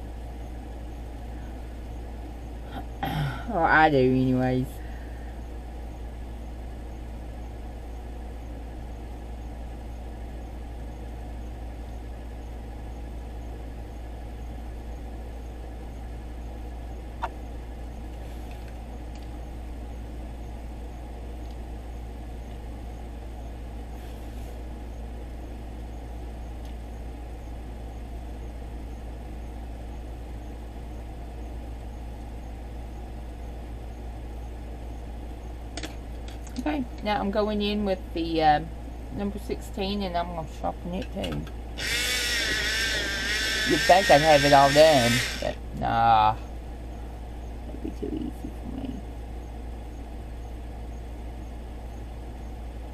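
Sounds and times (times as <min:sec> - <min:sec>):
low background hum: 0:00.0 - 0:52.9.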